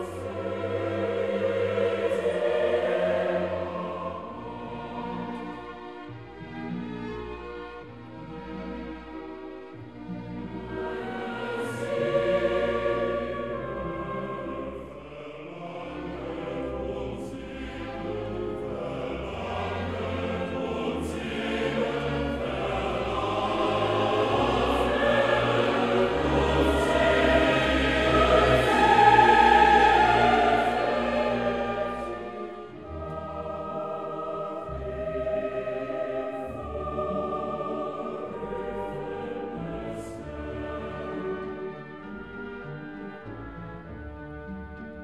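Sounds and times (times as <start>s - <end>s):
choir singing classical music: 0.0s - 45.0s.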